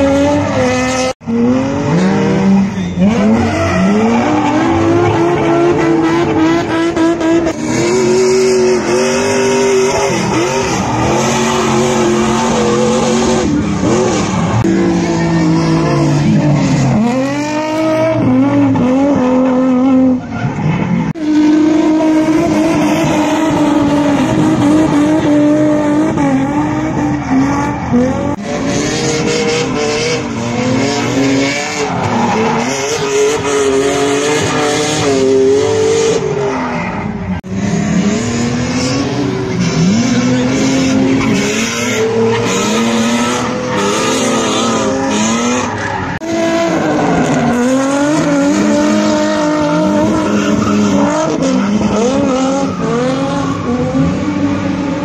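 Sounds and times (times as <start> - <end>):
car engines at high revs: 0.0 - 55.0.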